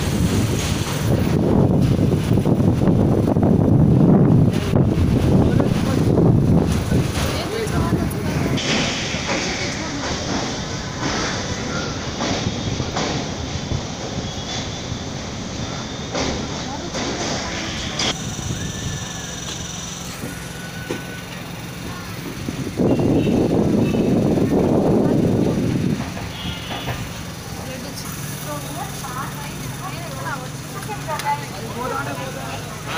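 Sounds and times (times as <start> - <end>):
train wheel clacks: 0.0 - 3.4, 4.0 - 32.9
loud rumble: 0.0 - 32.9
train running over bridge: 0.0 - 32.9
voices: 3.8 - 32.9.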